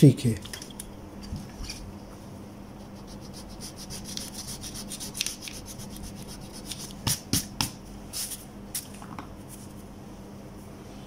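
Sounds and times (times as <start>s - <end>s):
pencil writing on paper: 2.9s - 7.1s.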